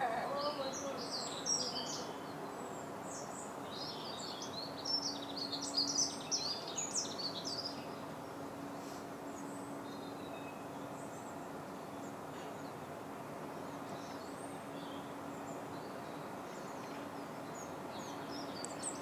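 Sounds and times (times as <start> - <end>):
outdoor background noise: 0.0 - 19.0
songbird chirps and trills: 0.0 - 19.0.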